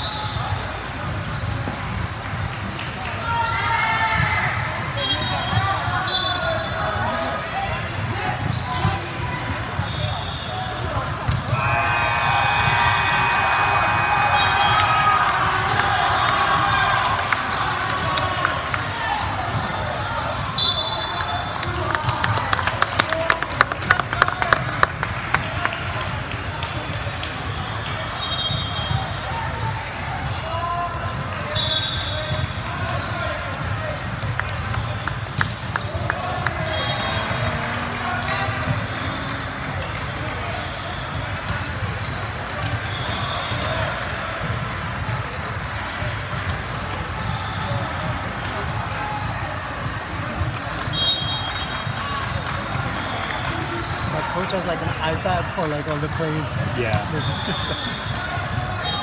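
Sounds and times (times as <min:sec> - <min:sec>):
spectator chatter: 0:00.0 - 0:59.0
sneaker squeaks on hardwood: 0:08.0 - 0:11.6.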